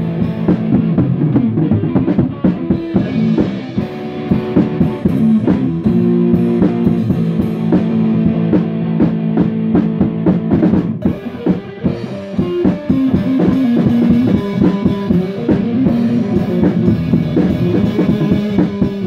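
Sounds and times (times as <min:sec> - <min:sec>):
drum beat with cymbals: 0:00.0 - 0:19.0
electric guitar chords: 0:00.0 - 0:19.0.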